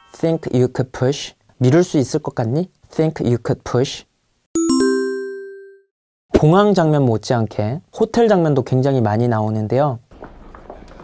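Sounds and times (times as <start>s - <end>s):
bell ding strikes: 4.6s - 5.9s.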